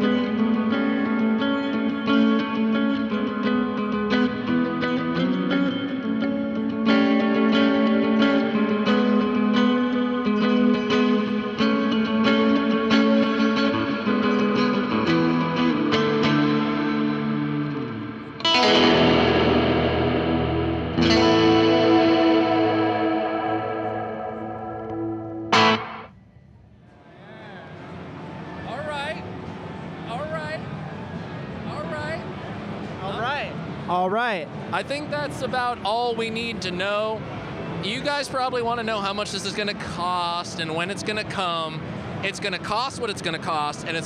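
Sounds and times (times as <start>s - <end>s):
strummed guitar chords ringing: 0.0s - 26.1s
electric guitar notes and chords: 0.0s - 26.2s, 38.8s - 44.0s.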